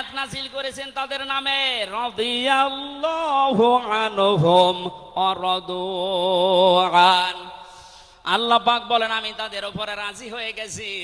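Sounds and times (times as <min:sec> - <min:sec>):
man chanting melodically: 0:00.0 - 0:07.6, 0:08.2 - 0:11.0.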